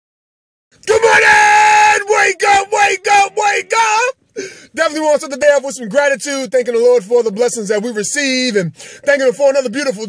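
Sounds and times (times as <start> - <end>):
man yelling on high pitch: 0.8 - 4.2.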